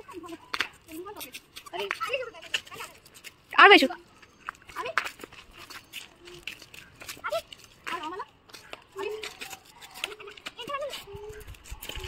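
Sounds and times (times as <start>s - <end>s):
young children calling and babbling: 0.0s - 12.0s.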